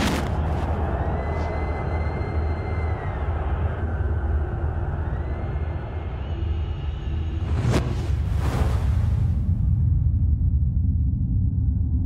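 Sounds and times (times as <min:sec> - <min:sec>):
steady low rumble: 0:03.3 - 0:12.0.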